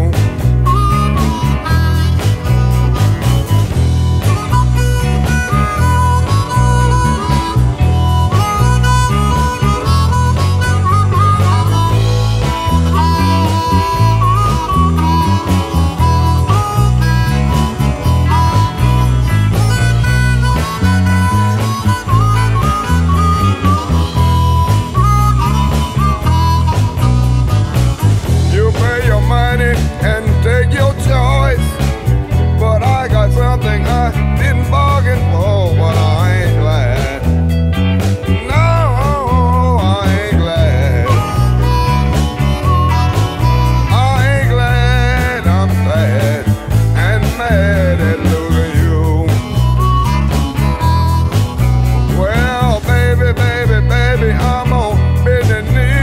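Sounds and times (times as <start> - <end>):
blues band backing: 0.0 - 56.0
blues harmonica solo: 0.0 - 56.0
electric bass line: 0.0 - 56.0.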